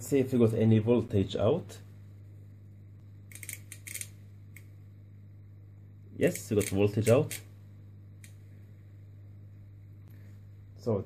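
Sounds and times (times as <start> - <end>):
low electrical hum: 0.0 - 11.0
metallic clicks and scrapes: 3.3 - 4.2.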